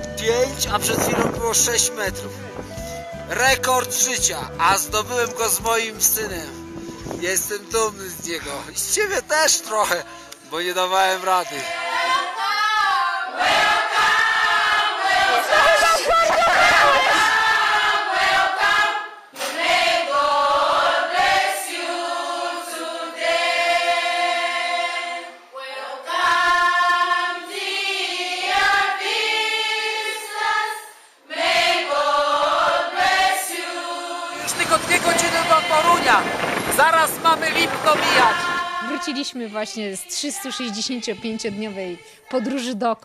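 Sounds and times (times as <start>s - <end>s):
choir singing held notes: 9.6s - 42.7s.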